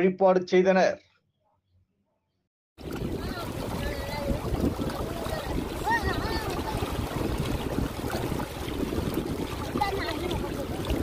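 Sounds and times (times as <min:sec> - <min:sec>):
shallow river water flowing: 0:02.8 - 0:11.0
wind buffeting microphone: 0:02.8 - 0:11.0.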